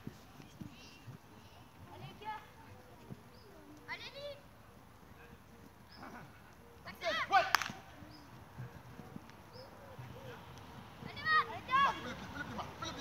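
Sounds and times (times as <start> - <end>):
children shouting: 11.0 - 12.2.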